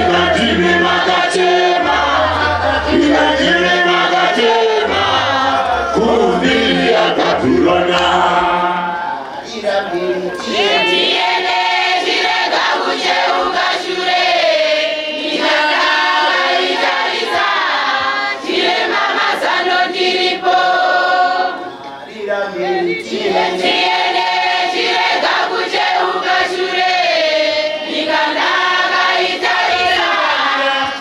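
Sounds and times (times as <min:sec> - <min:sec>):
congregation singing a hymn: 0:00.0 - 0:31.0.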